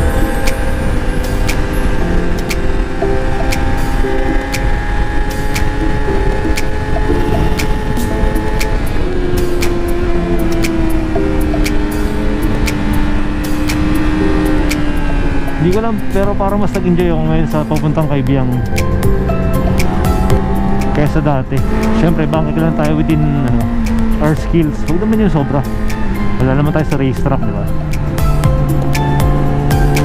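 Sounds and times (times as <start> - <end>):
background music with beat: 0.0 - 30.0
motorcycle engine running: 0.0 - 30.0
wind rushing over microphone: 0.0 - 30.0.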